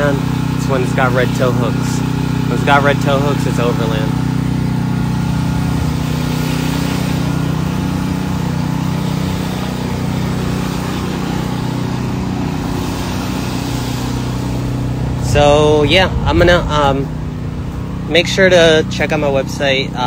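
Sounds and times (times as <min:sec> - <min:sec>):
low engine hum: 0:00.0 - 0:20.0.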